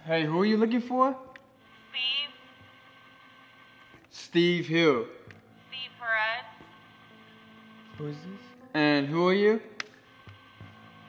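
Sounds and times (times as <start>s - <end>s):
intercom line hiss and hum: 0.0s - 11.0s.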